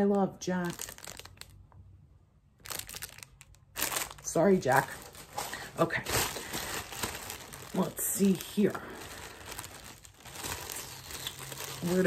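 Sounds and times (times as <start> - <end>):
plastic bag crinkling: 0.0 - 1.6, 2.6 - 12.0.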